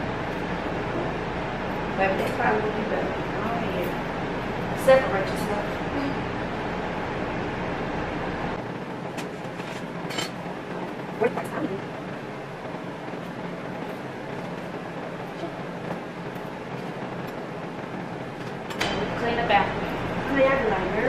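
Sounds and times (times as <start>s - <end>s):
steady background hum: 0.0s - 21.0s.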